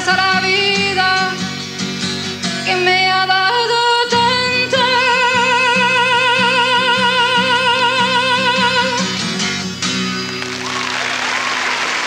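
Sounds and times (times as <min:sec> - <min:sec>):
woman singing: 0:00.0 - 0:01.7, 0:02.5 - 0:09.4
acoustic guitar strumming: 0:00.0 - 0:11.9.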